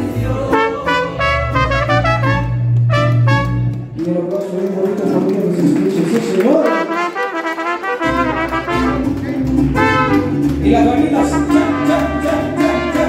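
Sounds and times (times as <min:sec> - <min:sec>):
deep bass guitar: 0:00.0 - 0:04.3, 0:08.0 - 0:13.0
trumpets playing melody: 0:00.4 - 0:04.0, 0:06.6 - 0:13.0
guitars: 0:07.1 - 0:13.0.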